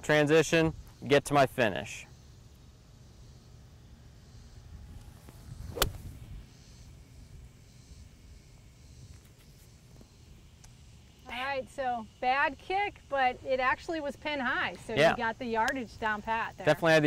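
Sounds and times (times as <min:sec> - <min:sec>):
golf club striking ball: 0:05.6 - 0:06.2.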